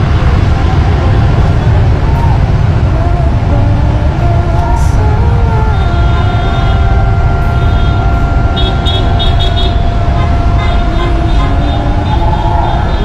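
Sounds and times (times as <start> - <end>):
steady high tone: 0.0 - 13.0
vehicles driving past: 0.0 - 13.0.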